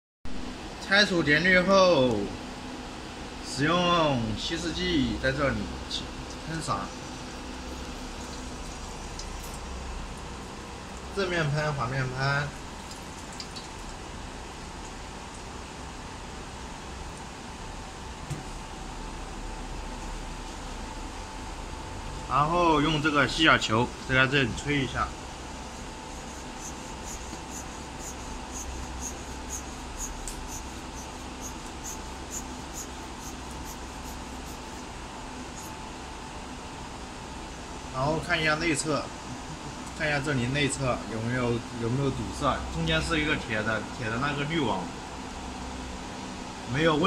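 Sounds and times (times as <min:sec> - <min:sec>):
steady background hum: 0:00.3 - 0:47.0.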